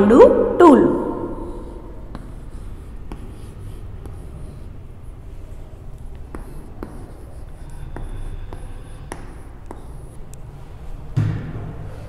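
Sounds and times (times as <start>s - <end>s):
chalk scratching on blackboard: 1.8s - 11.0s
chalk tapping on board: 2.0s - 4.8s, 5.9s - 10.5s.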